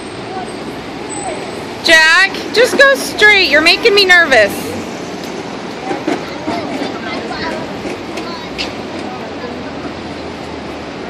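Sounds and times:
passing traffic: 0.0 - 11.0
faint voices of people: 5.7 - 10.4.

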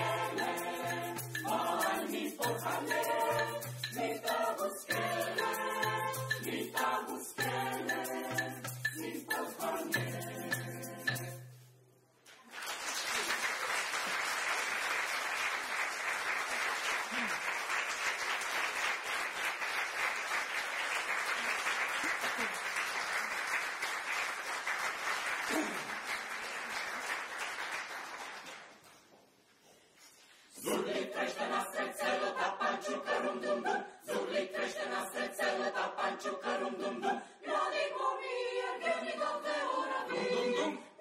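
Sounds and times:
choir singing: 0.0 - 11.5, 30.5 - 41.0
audience applauding: 12.3 - 28.8.

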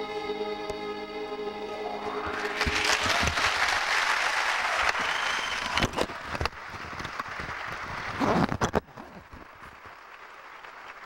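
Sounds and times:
audience applauding: 2.0 - 11.0.

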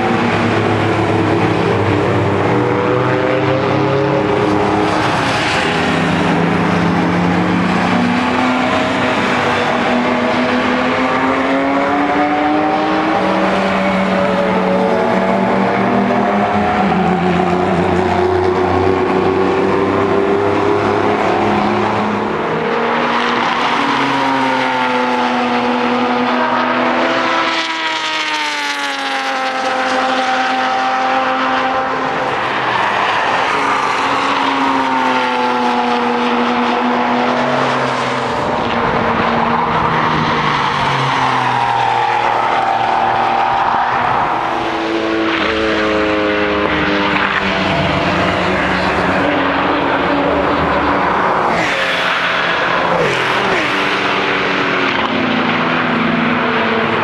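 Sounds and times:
sports car engines racing past: 0.0 - 57.0.

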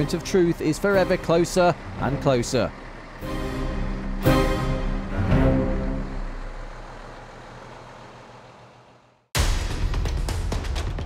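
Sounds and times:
coach engine driving away: 0.0 - 9.3.

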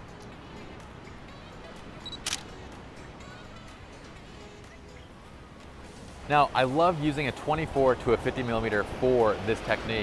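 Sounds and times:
camera shutter click: 2.1 - 2.5.

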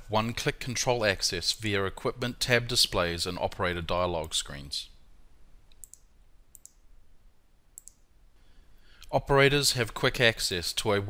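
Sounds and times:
computer mouse button clicking: 7.8 - 8.0.

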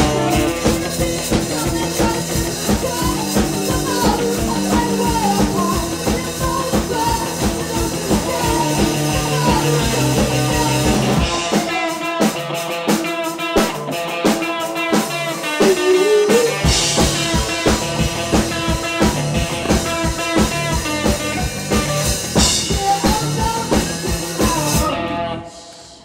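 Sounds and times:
punk band playing live: 0.0 - 26.0.

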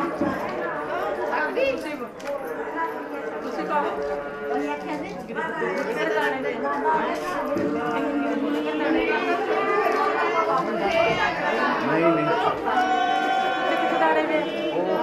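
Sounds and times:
people chatting: 0.0 - 15.0.

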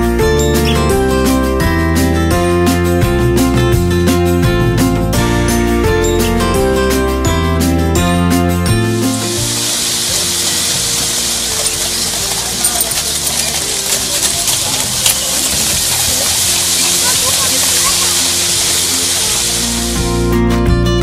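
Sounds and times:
fountain water splashing into basin: 9.0 - 20.1.

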